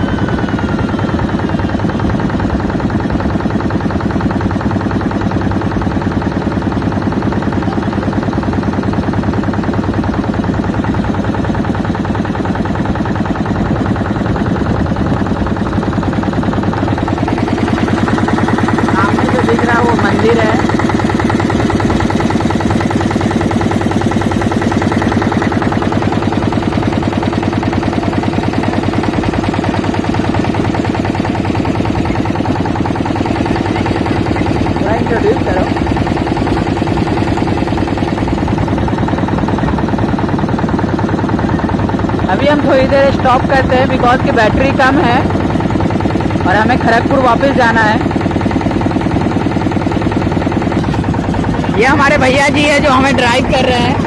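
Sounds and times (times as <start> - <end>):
motorboat engine chugging: 0.0 - 54.0.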